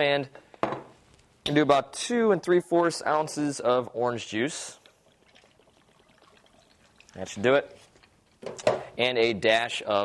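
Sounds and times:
juice trickling into a glass: 0:04.8 - 0:08.4.

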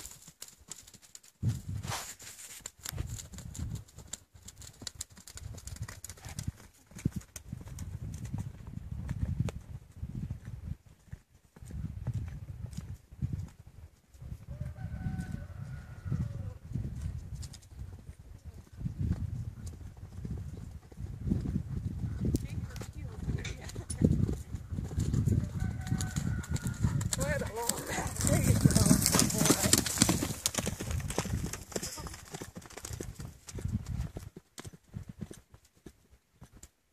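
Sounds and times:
horse hoofbeats on dirt: 0:00.0 - 0:01.8, 0:02.7 - 0:16.0, 0:16.8 - 0:36.9.

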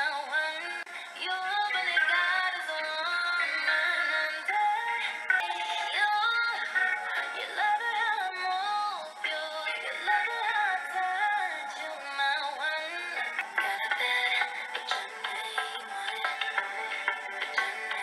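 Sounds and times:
woman singing pop song: 0:00.0 - 0:18.0.

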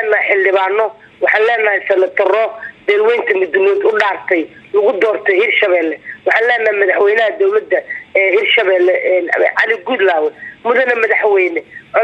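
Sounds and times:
woman talking on phone: 0:00.0 - 0:12.0.

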